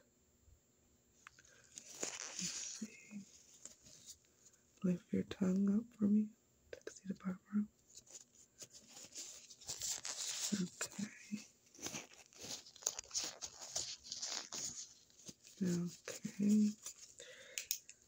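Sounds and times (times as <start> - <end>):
crackly rustling and clicking: 7.8 - 18.0.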